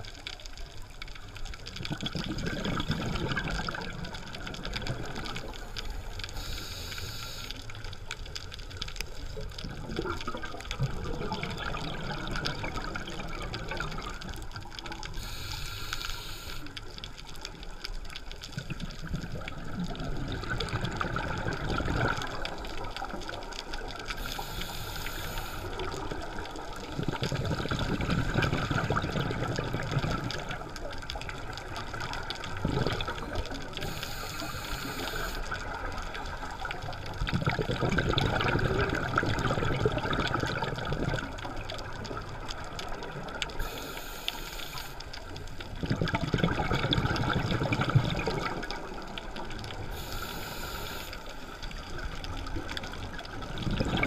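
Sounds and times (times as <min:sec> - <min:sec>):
exhaust bubbles rushing: 0:01.8 - 0:05.3, 0:37.3 - 0:41.4, 0:45.8 - 0:48.7
regulator inhalation hiss: 0:06.3 - 0:07.7, 0:15.2 - 0:16.8, 0:24.2 - 0:25.9, 0:33.8 - 0:35.6, 0:43.6 - 0:45.1, 0:49.9 - 0:51.5.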